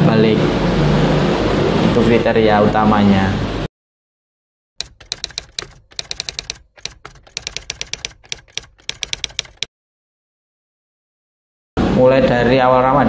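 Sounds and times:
typewriter key clicks: 4.8 - 9.7.

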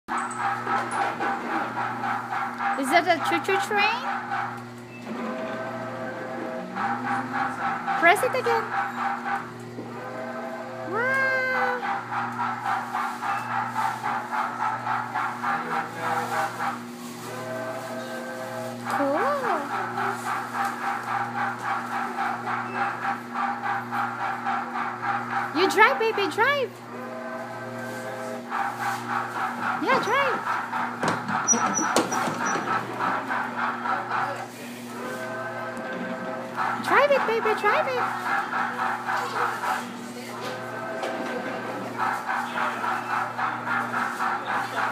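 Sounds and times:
knocks: 31.0 - 32.9.

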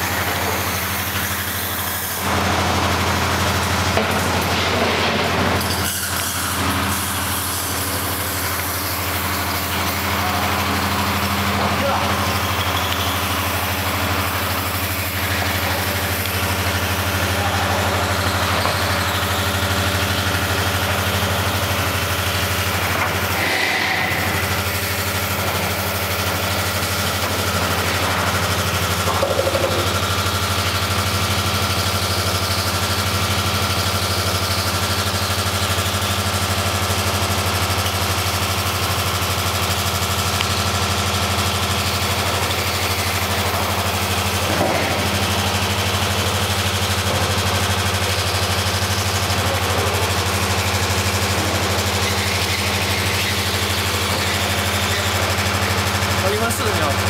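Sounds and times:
welding machine humming: 0.0 - 57.0.

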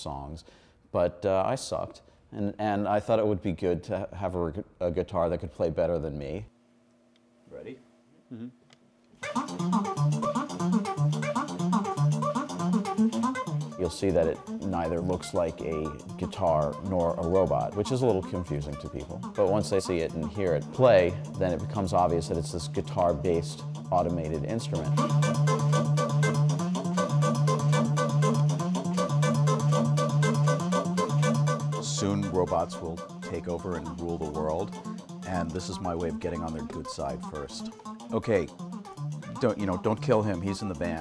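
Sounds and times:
robotic guitar fast riff: 9.2 - 41.0
low repeating bass note: 12.0 - 41.0
sustained organ-like tone: 12.4 - 41.0.

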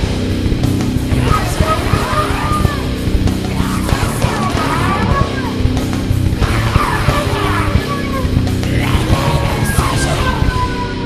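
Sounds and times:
extreme metal music: 0.0 - 11.0
squealing guitar glides: 1.0 - 11.0.

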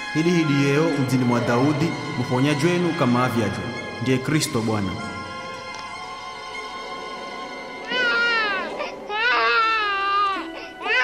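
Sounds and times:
soft film music: 0.0 - 11.0
newborn baby crying: 7.8 - 11.0.

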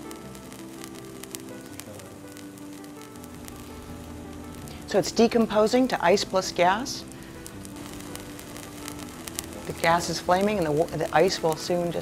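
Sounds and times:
faint crackles of burning gas: 0.0 - 12.0
low background tone: 0.0 - 12.0.

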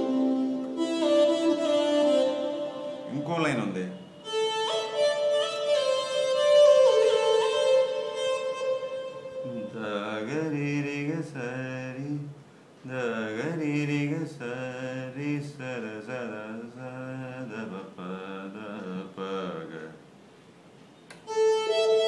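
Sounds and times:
man singing: 9.4 - 20.0.

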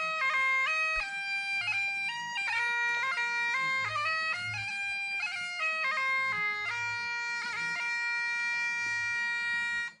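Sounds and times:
bagpipes holding a note: 0.0 - 10.0.

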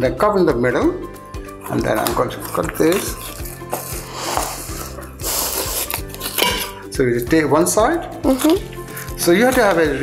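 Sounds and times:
background music: 0.0 - 10.0
knife scraping through fish: 1.6 - 6.9.

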